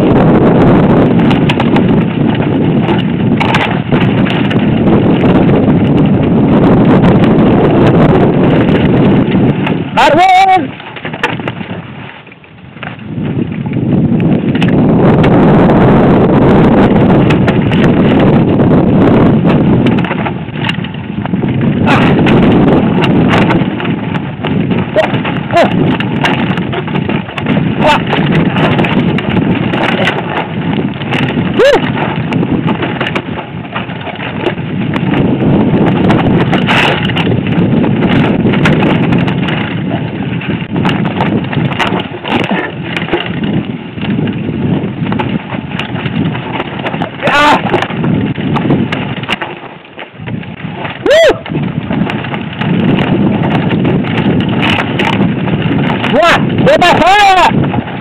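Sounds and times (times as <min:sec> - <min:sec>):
bike rattling and knocking: 0:00.0 - 0:58.0
tyres rumbling on stones: 0:00.0 - 0:58.0
wind buffeting microphone: 0:00.0 - 0:58.0
brief vocal cry: 0:51.0 - 0:51.4.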